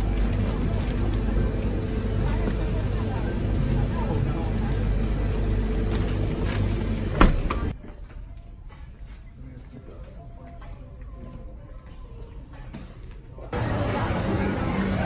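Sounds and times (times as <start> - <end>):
hum of refrigerated cases: 0.0 - 9.8, 11.5 - 15.0
faint voices: 0.0 - 15.0.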